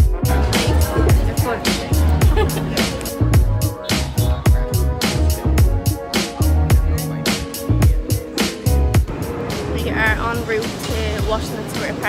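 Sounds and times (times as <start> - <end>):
traffic going by: 8.3 - 12.0
woman's voice: 9.8 - 12.0.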